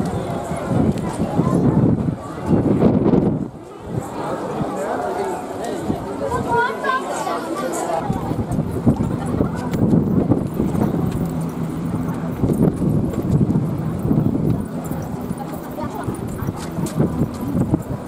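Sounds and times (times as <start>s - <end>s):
wind buffeting microphone: 0.0s - 4.8s, 8.0s - 18.0s
indistinct voices: 0.0s - 18.0s.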